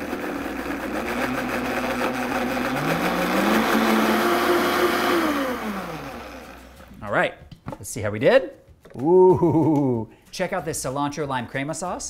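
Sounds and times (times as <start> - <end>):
blender motor whining: 0.0 - 6.9.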